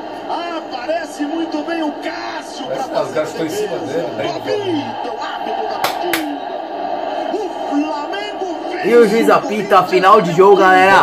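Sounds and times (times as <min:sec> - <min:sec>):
stadium crowd noise: 0:00.0 - 0:11.0
commentator speaking: 0:07.6 - 0:11.0.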